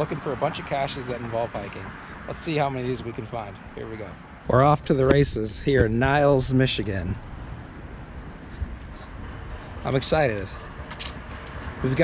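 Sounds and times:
footsteps on paved trail: 0:08.1 - 0:12.0.

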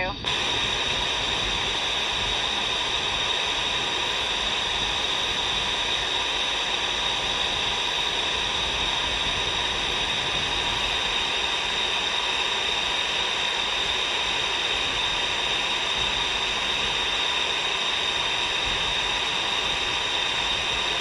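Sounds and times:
radio static hiss: 0:00.0 - 0:21.0.

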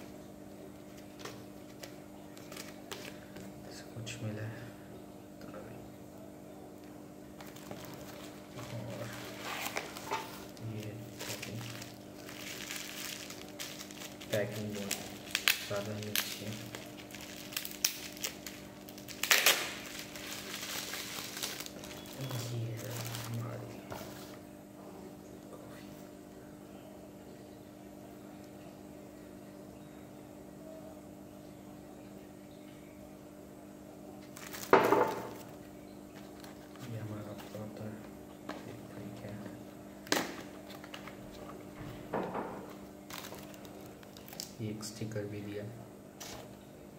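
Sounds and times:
faint low hum: 0:00.0 - 0:46.9
bubble wrap and cardboard rustling: 0:00.8 - 0:03.2, 0:07.4 - 0:24.4, 0:34.2 - 0:39.4, 0:40.0 - 0:41.9, 0:42.6 - 0:44.6.

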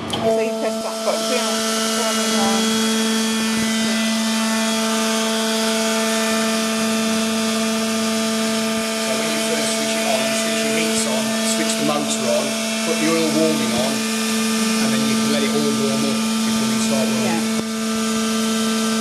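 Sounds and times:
hydraulic pump motor humming: 0:00.0 - 0:19.0.

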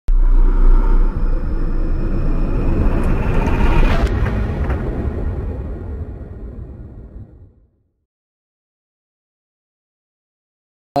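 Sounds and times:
rising whoosh: 0:00.1 - 0:07.8
deep loud rumble: 0:00.1 - 0:07.9.

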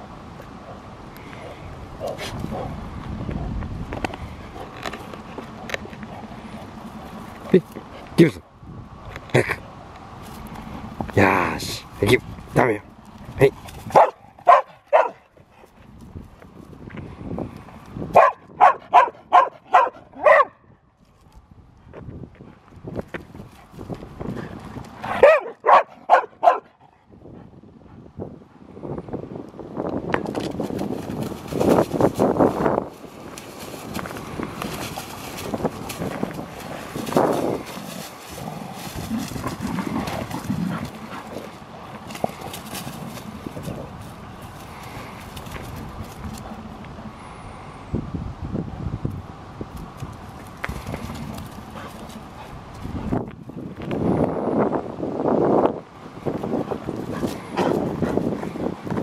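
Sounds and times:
dogs scuffling and wrestling: 0:00.4 - 0:08.2, 0:11.9 - 0:18.3, 0:30.1 - 0:46.9, 0:49.7 - 0:54.1, 0:56.2 - 0:59.0
dog barking: 0:13.9 - 0:15.2, 0:18.2 - 0:20.6, 0:25.1 - 0:26.7.

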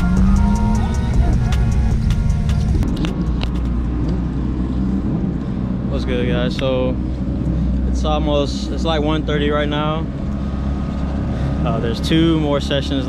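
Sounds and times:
music: 0:00.0 - 0:03.1
steady low rumble: 0:00.0 - 0:13.0.

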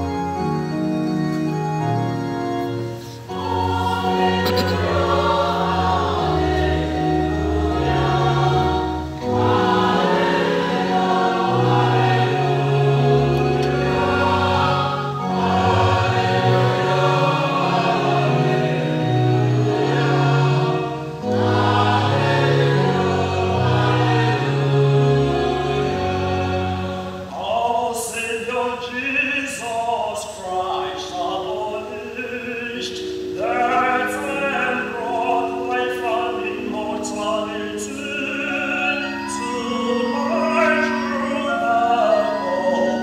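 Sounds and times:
electronic keyboard chords: 0:00.0 - 0:27.4
choir singing: 0:02.6 - 0:43.0.

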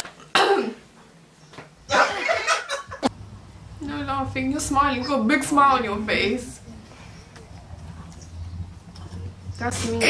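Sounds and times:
person coughing: 0:00.3 - 0:00.8, 0:01.9 - 0:02.4.

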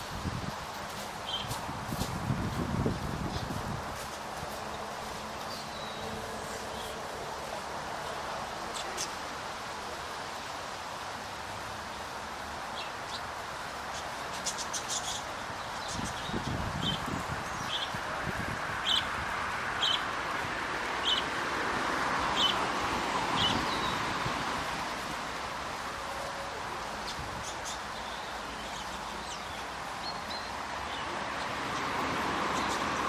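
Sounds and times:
rustling in straw: 0:00.0 - 0:07.6
steady outdoor hiss: 0:00.0 - 0:33.0.

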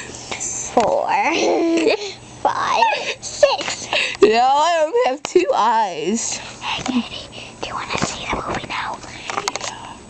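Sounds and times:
child whispering: 0:06.8 - 0:10.0.

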